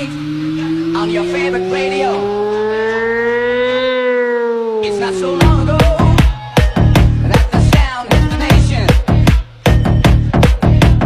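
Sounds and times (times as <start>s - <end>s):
siren-like synth tone gliding: 0.0s - 6.6s.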